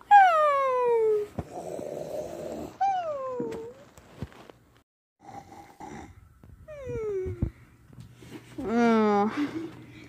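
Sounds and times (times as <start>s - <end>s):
child snoring: 1.5s - 2.8s, 5.2s - 6.2s.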